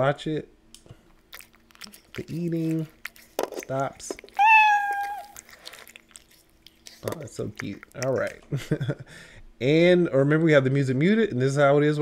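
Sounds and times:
low steady hum: 0.0s - 12.0s
cat meow: 4.4s - 5.4s.

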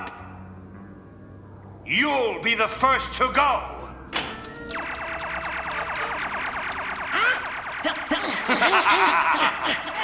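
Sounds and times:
quick ticking: 4.4s - 10.0s
pulsing warbling tone: 4.5s - 10.0s.

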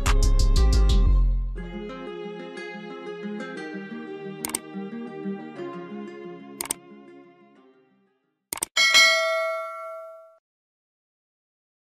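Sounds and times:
bell-like ding: 8.8s - 10.4s.

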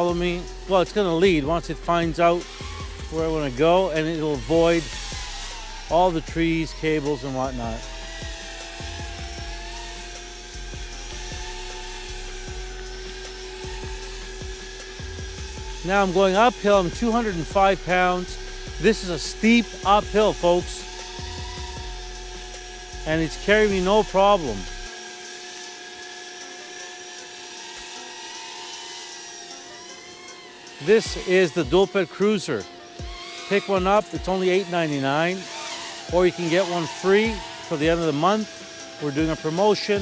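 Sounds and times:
electric motor whine: 0.0s - 40.0s.

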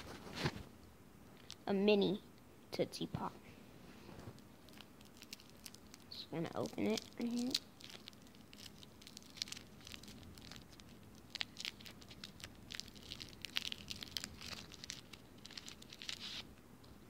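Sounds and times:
paper wrapper crinkling and tearing: 4.3s - 16.5s.

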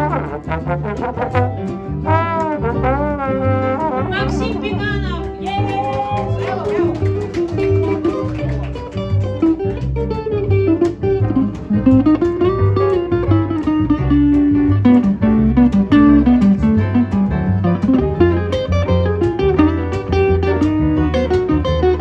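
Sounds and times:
pulsing bass: 0.0s - 7.0s, 9.0s - 22.0s
guitar melody with sliding notes: 0.0s - 22.0s
live band playing: 0.0s - 22.0s.

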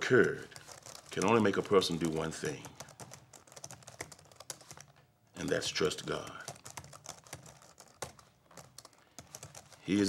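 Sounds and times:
laptop keyboard typing: 0.0s - 10.0s.

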